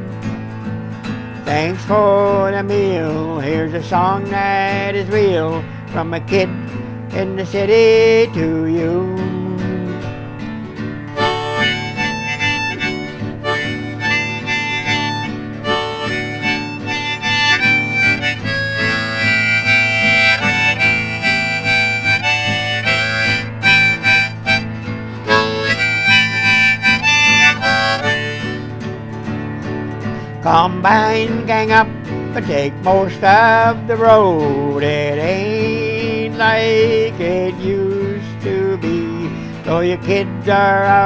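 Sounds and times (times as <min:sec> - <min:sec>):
strummed acoustic guitar: 0:00.0 - 0:41.0
harmonica melody: 0:08.8 - 0:39.7.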